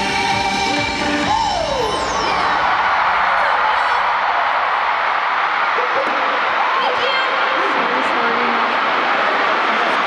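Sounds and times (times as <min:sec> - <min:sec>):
crowd cheering and screaming: 0:00.0 - 0:10.0.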